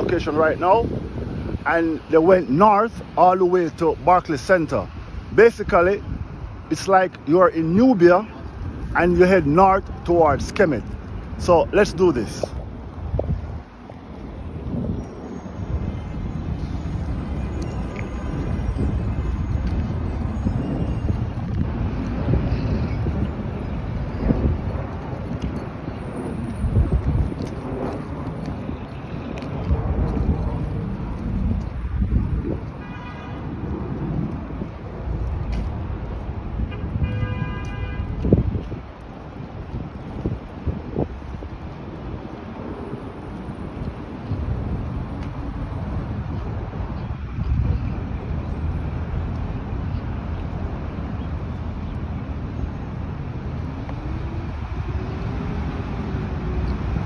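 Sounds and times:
passing traffic: 0.0 - 57.0
wind gusting on microphone: 0.0 - 57.0
car horn toots: 32.8 - 33.4, 36.7 - 38.1.

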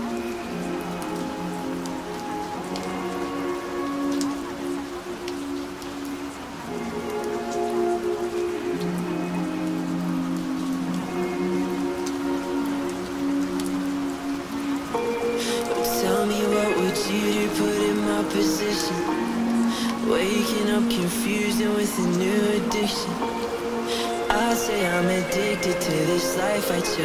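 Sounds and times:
steady rain falling: 0.0 - 27.0.

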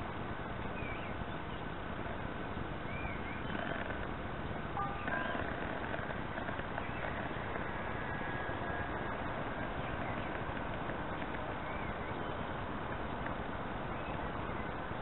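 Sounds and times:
thin steady whine: 0.0 - 15.0
wind rumbling on microphone: 0.0 - 15.0
bird chirping: 0.6 - 1.8, 2.4 - 15.0.

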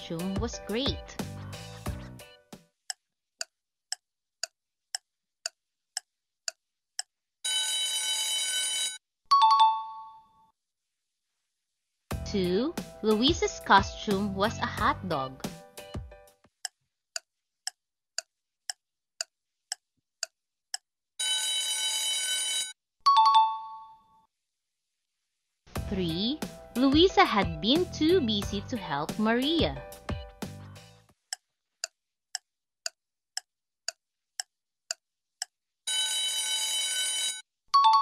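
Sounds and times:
timer tick: 31.3 - 35.5
ringing alarm: 35.9 - 37.4.

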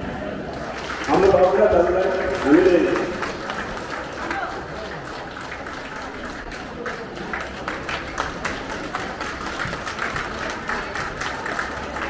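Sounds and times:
small group applauding: 0.5 - 12.0.

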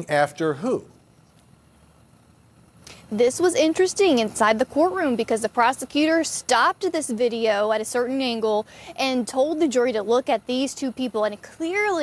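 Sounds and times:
background hiss: 0.0 - 12.0
low hum: 0.0 - 12.0.

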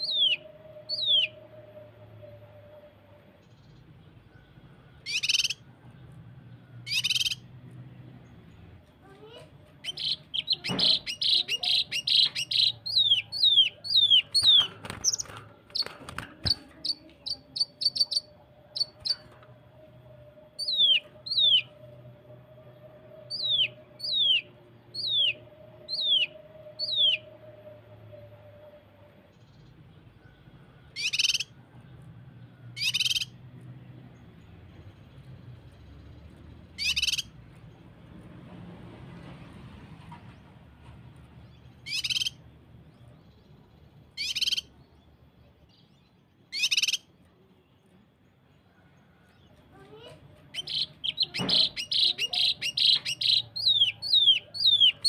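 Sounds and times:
bird singing rapid notes: 0.0 - 27.4, 30.9 - 32.1, 32.7 - 37.8, 41.4 - 47.8, 50.4 - 55.0.

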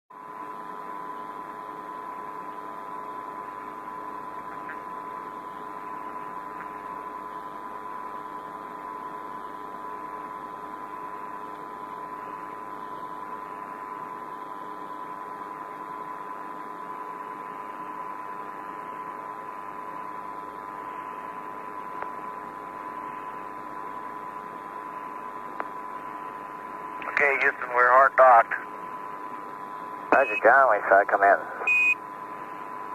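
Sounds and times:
radio channel hiss and hum: 0.2 - 32.9.

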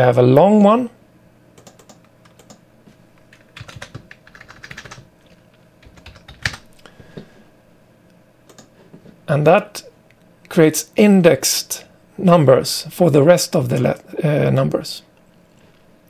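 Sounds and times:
typing on computer keyboard: 1.6 - 2.6, 3.3 - 6.7, 8.5 - 8.7.

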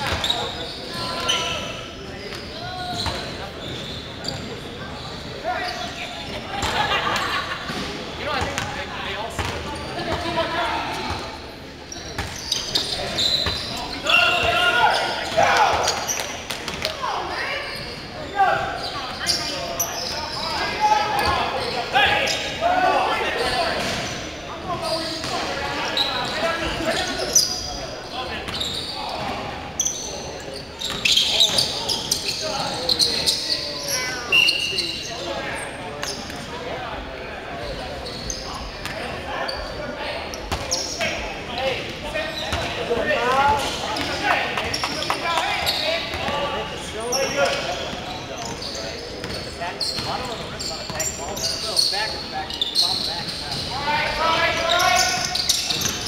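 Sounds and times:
players calling out: 0.0 - 36.5, 37.8 - 56.0
basketball bouncing on court: 8.4 - 8.7, 9.4 - 9.7.

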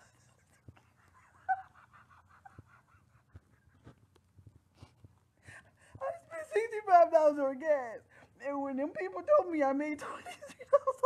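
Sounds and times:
woman's stifled laughter: 0.6 - 3.4.

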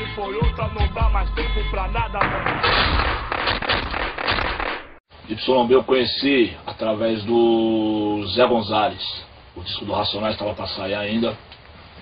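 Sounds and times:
dense crackling pops: 2.2 - 5.0.

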